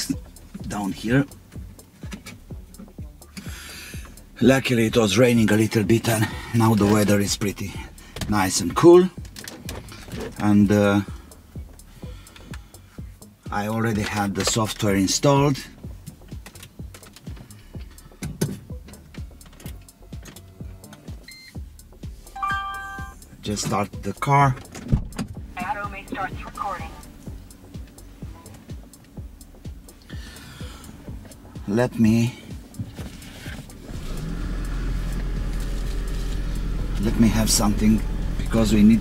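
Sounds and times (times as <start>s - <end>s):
short electronic beep: 22.4s - 23.2s.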